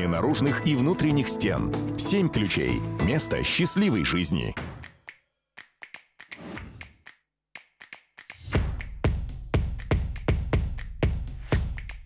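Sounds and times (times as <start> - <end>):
loud beat and low drum: 8.5 - 12.0.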